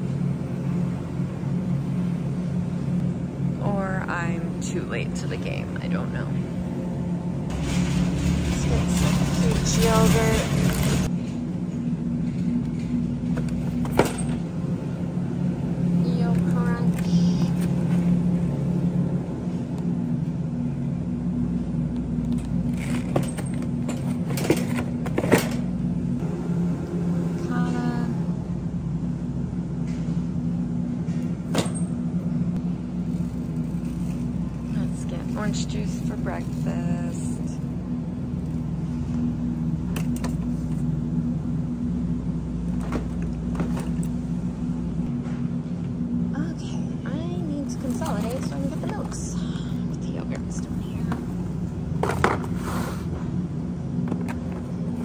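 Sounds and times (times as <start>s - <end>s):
steady low hum: 0.0s - 55.0s
shopping cart rumbling: 3.6s - 11.3s, 22.3s - 26.7s, 32.8s - 39.1s, 47.1s - 53.3s.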